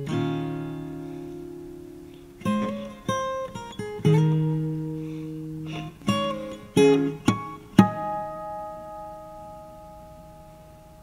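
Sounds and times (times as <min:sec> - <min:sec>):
guitar chord ringing: 0:00.0 - 0:11.0
plucked guitar notes: 0:00.0 - 0:11.0.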